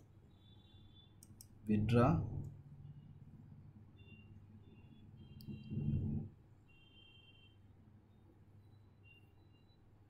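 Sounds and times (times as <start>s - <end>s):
computer mouse click: 1.2s - 1.6s
low steady hum: 1.3s - 9.8s.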